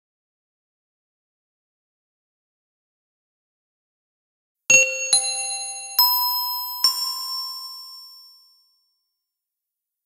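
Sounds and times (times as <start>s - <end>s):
bell-like chime ringing: 4.7s - 9.0s.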